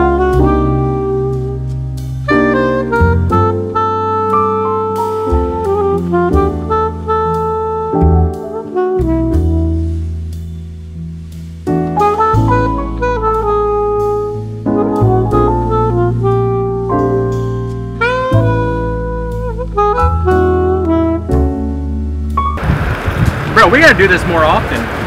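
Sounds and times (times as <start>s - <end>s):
jazz horn melody over bass line: 0.0s - 24.9s
outdoor noise: 22.4s - 25.0s
man's voice: 23.5s - 24.9s.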